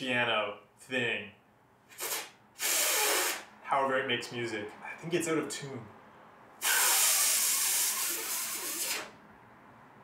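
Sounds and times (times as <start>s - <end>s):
breath blown onto phone: 1.9s - 3.5s, 6.6s - 9.2s.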